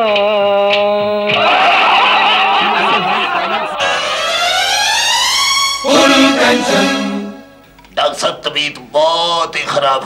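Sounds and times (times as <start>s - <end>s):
crowd laughing: 1.3s - 5.1s.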